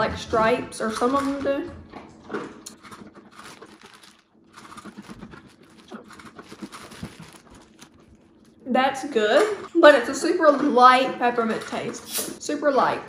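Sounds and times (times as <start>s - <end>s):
dog eating food crunching: 1.9s - 8.6s.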